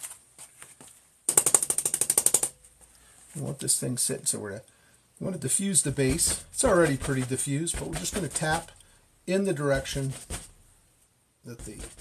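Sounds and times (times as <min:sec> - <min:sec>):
brush tapping on canvas: 0:05.8 - 0:08.8, 0:09.6 - 0:10.7, 0:11.6 - 0:12.0.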